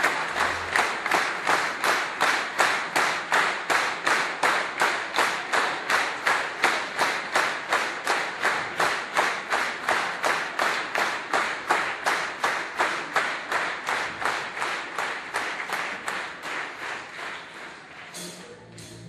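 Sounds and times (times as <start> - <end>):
crowd clapping in unison: 0.0 - 19.0.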